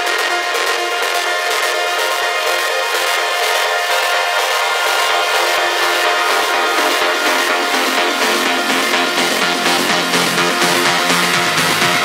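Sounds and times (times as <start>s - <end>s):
bass: 0.0s - 12.0s
sustained synth chords: 0.0s - 12.0s.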